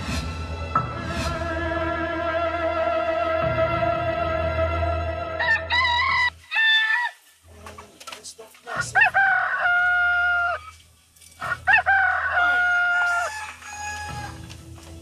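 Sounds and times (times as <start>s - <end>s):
rooster crowing: 5.4s - 7.2s, 9.0s - 10.8s, 11.4s - 14.5s.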